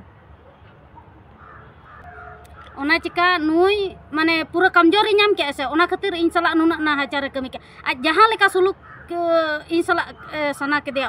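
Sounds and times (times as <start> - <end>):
crow cawing: 1.3 - 3.6, 8.5 - 9.2.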